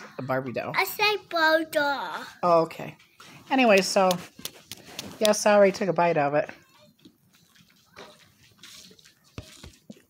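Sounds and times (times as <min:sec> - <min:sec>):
chewing and wet mouth sounds: 0:06.6 - 0:10.0.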